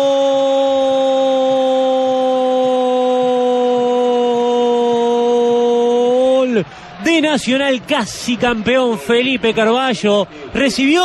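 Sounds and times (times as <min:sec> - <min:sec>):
commentator shouting goal: 0:00.0 - 0:11.0.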